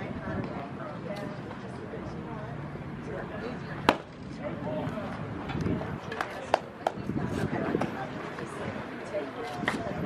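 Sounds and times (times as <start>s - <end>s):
faint outdoor voices: 0.0s - 10.0s.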